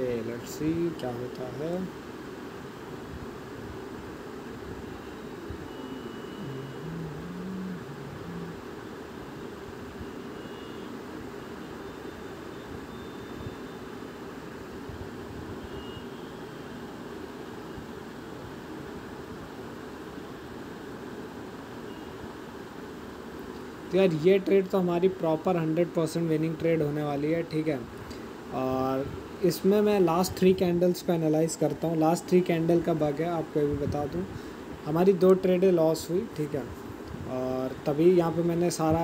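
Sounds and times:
steady low background noise: 0.0 - 39.0.

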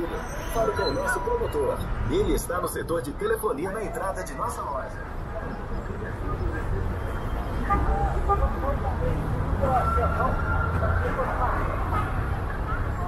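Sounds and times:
chatter of passers-by: 0.0 - 13.0
rumble of passing traffic: 0.0 - 13.0.

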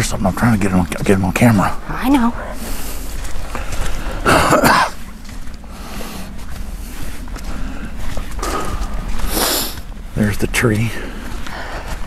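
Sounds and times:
steady low rumble: 0.0 - 12.0
cough-like vocal burst: 4.2 - 5.0.

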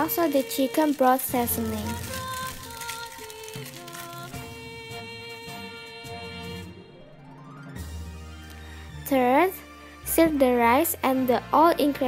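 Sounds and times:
march music playing: 0.0 - 2.8.

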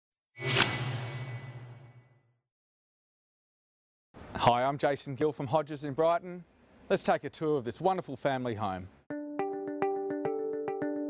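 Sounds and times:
whoosh: 0.4 - 2.2.

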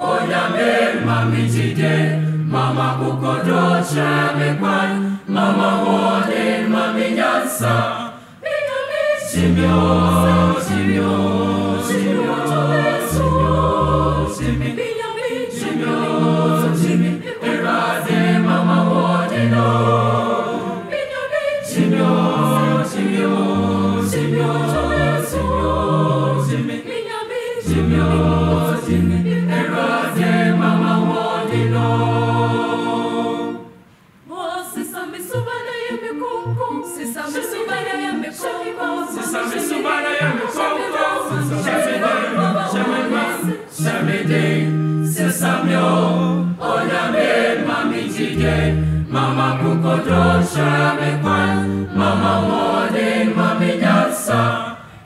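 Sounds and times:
choir singing gospel: 0.0 - 55.0.

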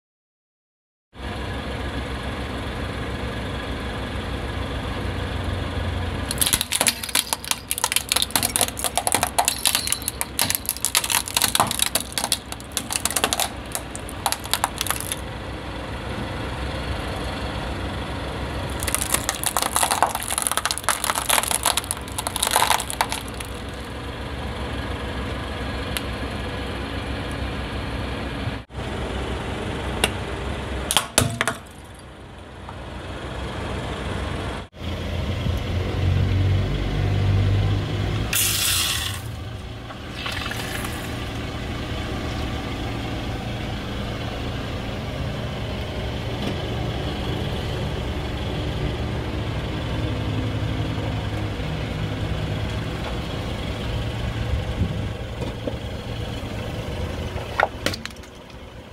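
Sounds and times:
car engine running: 1.7 - 30.9, 39.1 - 58.9
tyre crushing plastic crackling: 6.3 - 15.2, 18.7 - 23.9
short hiss: 38.4 - 39.3.

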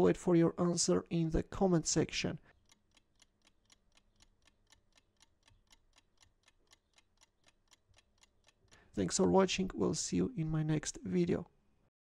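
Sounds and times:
clock ticking: 2.5 - 9.8.

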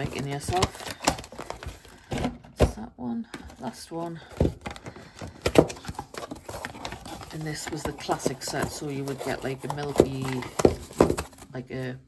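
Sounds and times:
cardboard box being opened: 0.0 - 2.4, 4.3 - 11.5.

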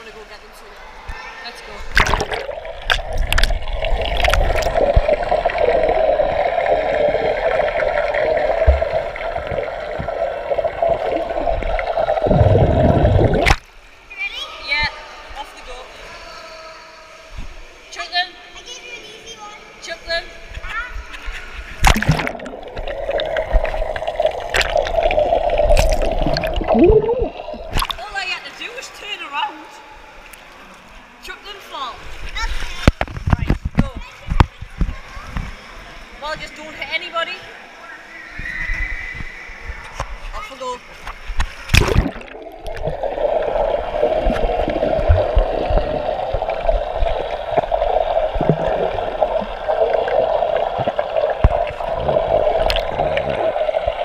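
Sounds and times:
water sloshing and splashing: 1.8 - 14.1, 21.7 - 28.5, 40.8 - 54.0
rushing water noise: 1.9 - 14.0, 21.8 - 28.6, 41.4 - 54.0.

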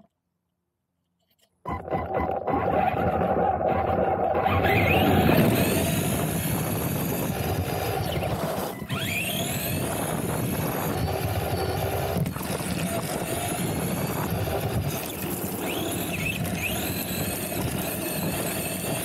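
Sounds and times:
electric motor whine: 2.6 - 19.0.

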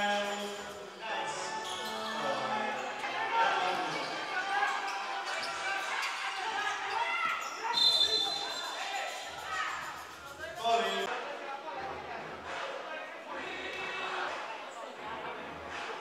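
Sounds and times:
players and spectators voices: 0.0 - 16.0
referee's whistle blast: 7.6 - 8.8.

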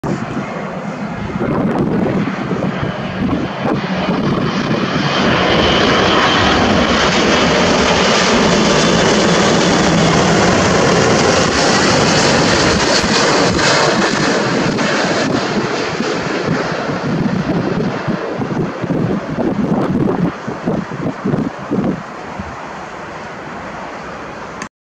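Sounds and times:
jet engines rushing: 0.0 - 24.7.

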